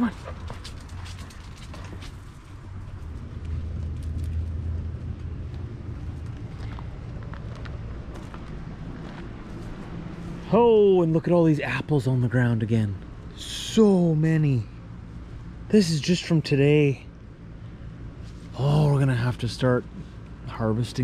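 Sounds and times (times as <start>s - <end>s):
footsteps: 0.0s - 10.5s
low steady rumble: 0.0s - 21.0s.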